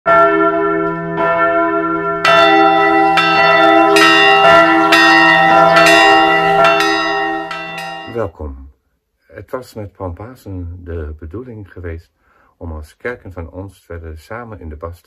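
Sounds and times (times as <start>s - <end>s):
church bell ringing: 0.1s - 8.3s.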